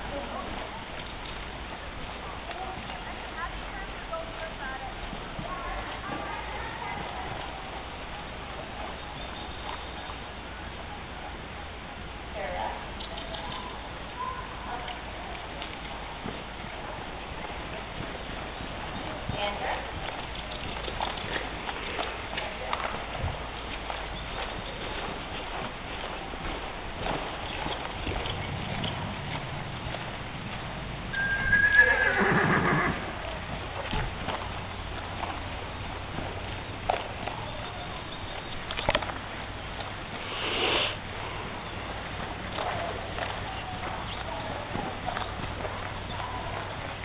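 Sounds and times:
horse hooves cantering on dirt: 0.0s - 47.0s.

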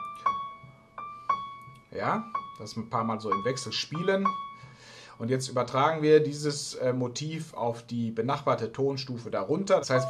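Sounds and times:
piano practice figure: 9.8s - 10.0s.

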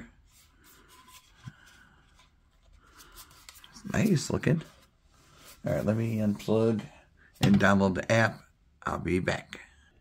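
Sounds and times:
plastic handling sounds: 0.2s - 6.8s.

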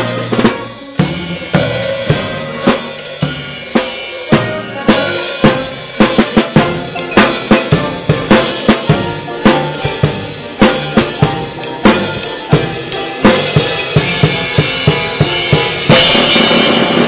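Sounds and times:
drum kit played with sticks: 0.0s - 17.0s
horn ensemble: 0.0s - 17.0s
piano chords: 0.0s - 17.0s.

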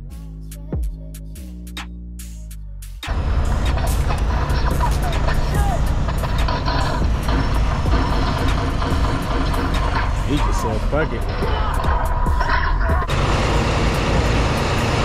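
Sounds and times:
truck engine and road noise: 2.7s - 15.0s.

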